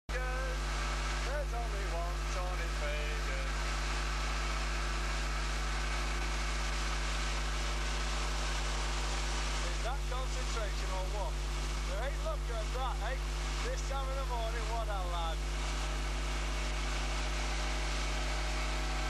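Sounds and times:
boat engine running: 0.1 - 19.0
person speaking: 11.9 - 15.4.

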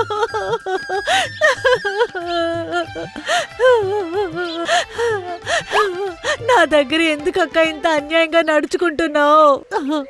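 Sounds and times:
elderly woman moaning: 0.0 - 6.7
faint background music: 0.0 - 10.0
woman gasping: 1.0 - 1.7, 2.8 - 6.6.

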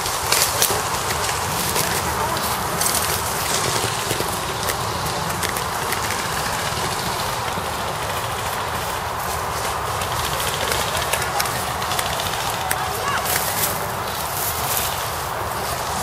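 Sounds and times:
footsteps in dry leaves: 0.0 - 16.0.

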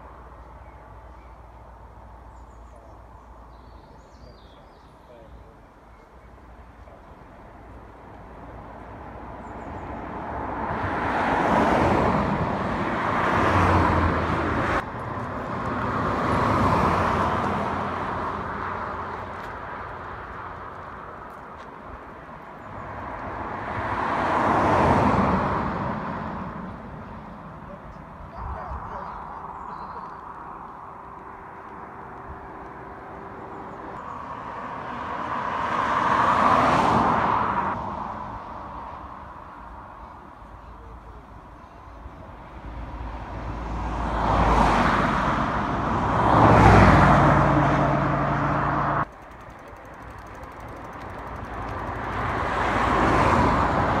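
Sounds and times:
traffic passing at speed: 0.0 - 54.0.

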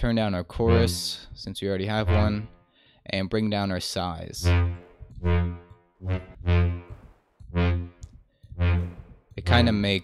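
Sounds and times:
synth brass lead short low notes: 0.7 - 1.2, 2.0 - 2.6, 4.4 - 9.2.

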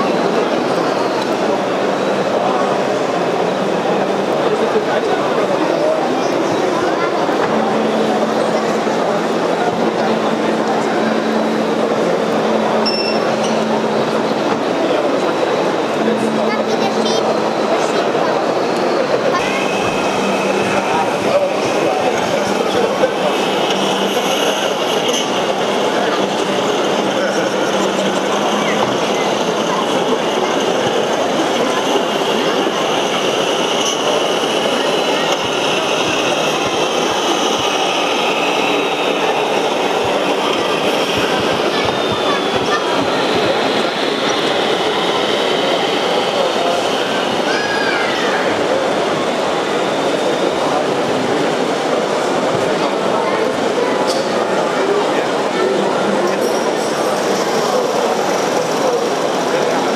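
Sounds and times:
crowd din echoing in hall: 0.0 - 59.9.

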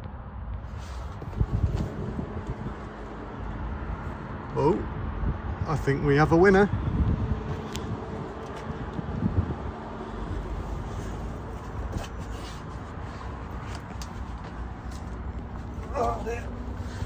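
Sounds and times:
low rumble and hum: 0.0 - 17.0.

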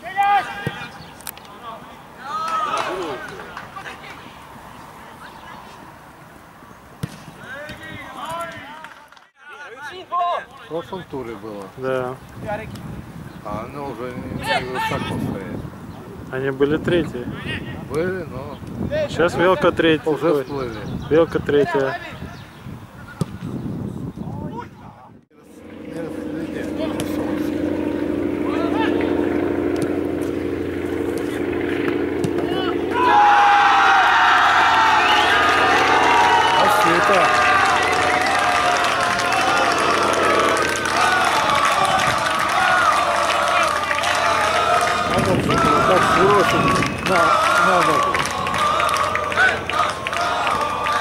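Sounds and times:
players and spectators shouting: 0.0 - 1.0, 2.2 - 3.9, 32.4 - 51.0
men talking: 7.4 - 12.7, 13.4 - 22.3, 24.3 - 29.5, 35.0 - 42.8, 43.4 - 48.3
distant voices: 25.3 - 51.0
steady low drone: 25.3 - 51.0.

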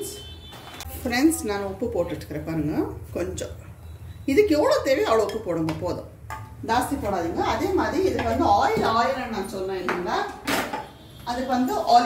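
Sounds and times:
woman talking: 0.9 - 3.6, 4.3 - 10.4, 11.3 - 12.0.

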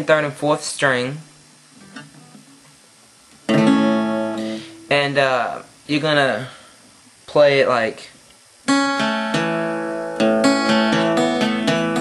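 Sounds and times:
acoustic guitar strings ringing: 3.5 - 5.1, 8.7 - 12.0.

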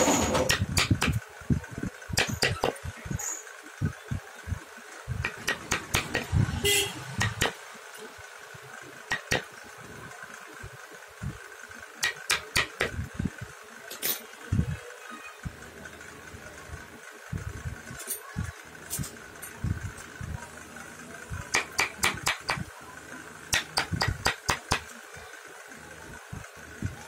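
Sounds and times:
steady hum: 0.0 - 27.0
mallet tapping chisel into wood: 0.5 - 1.2, 2.2 - 2.8, 5.3 - 6.3, 7.2 - 7.6, 9.1 - 9.5, 12.0 - 13.0, 21.5 - 22.6, 23.5 - 24.9.

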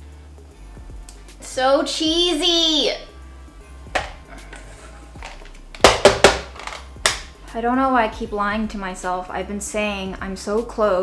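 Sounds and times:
dough scraped from metal bowl: 4.3 - 5.2.

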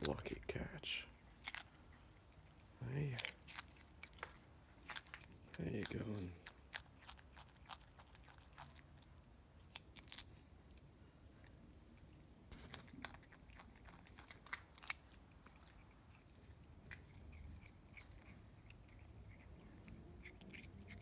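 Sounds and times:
chewing: 0.0 - 10.9, 11.8 - 21.0
possum crunching carrot: 0.0 - 21.0.

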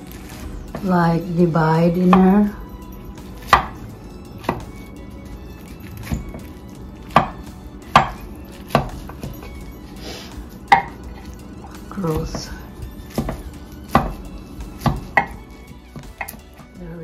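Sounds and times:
spatula knocking ceramic dish: 10.7 - 11.0, 14.9 - 15.4.

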